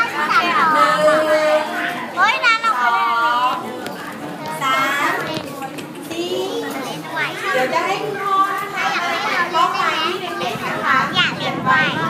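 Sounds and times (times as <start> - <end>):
young girls talking: 0.0 - 12.0.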